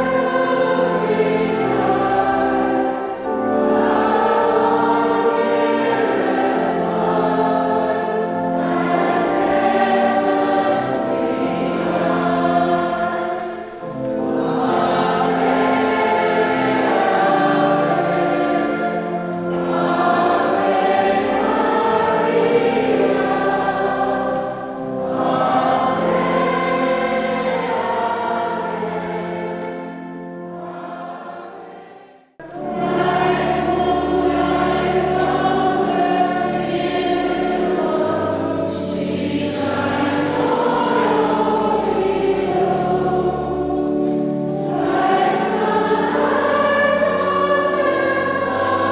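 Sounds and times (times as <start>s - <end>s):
congregation singing a hymn: 0.0s - 48.9s.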